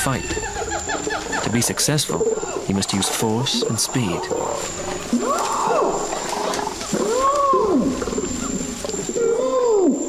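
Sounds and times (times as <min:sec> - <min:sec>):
orangutan screams: 0:02.3 - 0:10.0.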